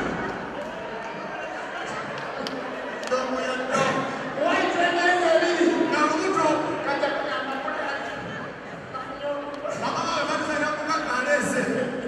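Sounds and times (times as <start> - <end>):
faint voices in a large hall: 0.0 - 12.0.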